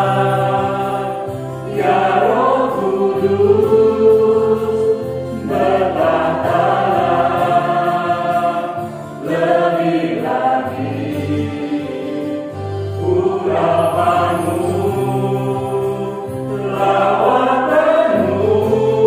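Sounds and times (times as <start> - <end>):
electronic keyboard: 0.0 - 19.0
vocal group singing in harmony: 0.0 - 19.0.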